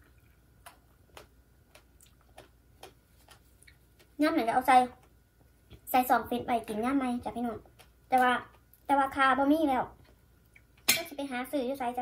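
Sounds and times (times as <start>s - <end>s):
mouth clicks of chewing: 0.0s - 4.2s.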